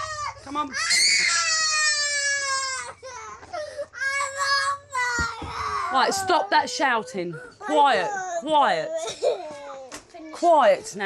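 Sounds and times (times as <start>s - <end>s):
boy screaming and crying: 0.0s - 8.4s.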